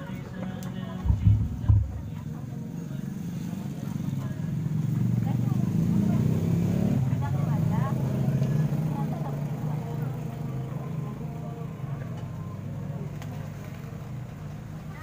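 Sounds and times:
indistinct crowd chatter: 0:00.0 - 0:15.0.

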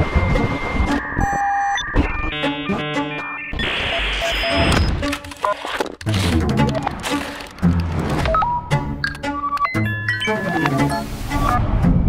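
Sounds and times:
held electronic beep: 0:00.0 - 0:05.6.

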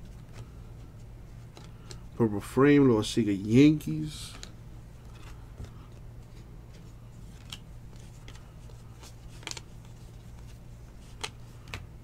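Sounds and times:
steady low hum: 0:00.0 - 0:12.0
cardboard cards flipped by hand: 0:00.1 - 0:02.1, 0:04.2 - 0:11.9.

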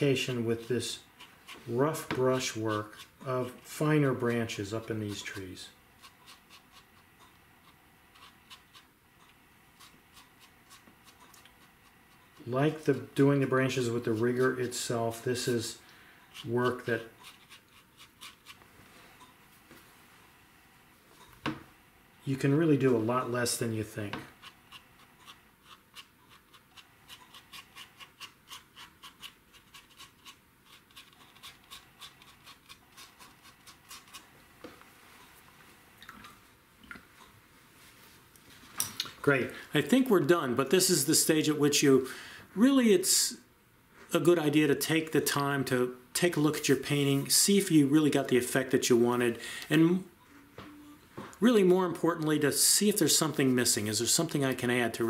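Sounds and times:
brush dabbing on paper: 0:00.0 - 0:18.6.

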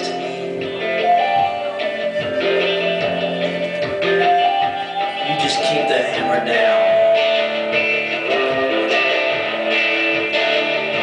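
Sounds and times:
flute playing long notes: 0:00.0 - 0:09.4
strummed acoustic guitar: 0:00.0 - 0:11.0.

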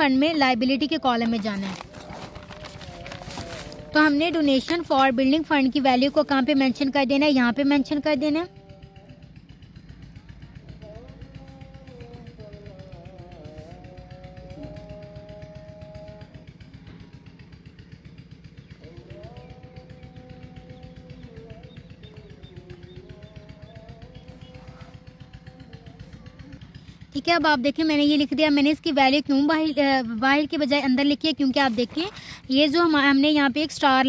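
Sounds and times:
small engine running: 0:00.0 - 0:34.0.

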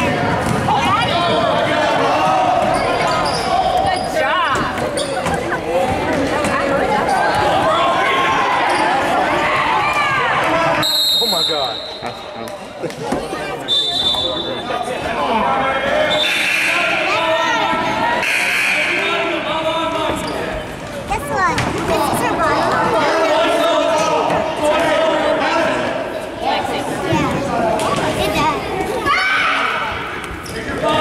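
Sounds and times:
players and spectators voices: 0:00.0 - 0:31.0
referee's whistle blasts: 0:10.8 - 0:12.2, 0:13.7 - 0:14.7, 0:16.1 - 0:17.0, 0:18.2 - 0:19.0.

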